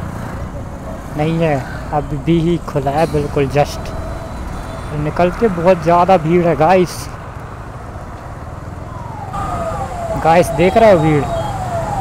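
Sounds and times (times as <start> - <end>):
road and traffic noise: 0.0 - 12.0
motorcycle engine rumbling: 8.8 - 12.0.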